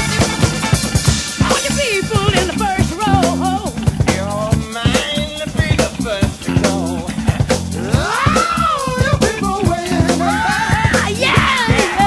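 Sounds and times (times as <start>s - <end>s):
soul-funk band with drums and bass: 0.0s - 12.0s.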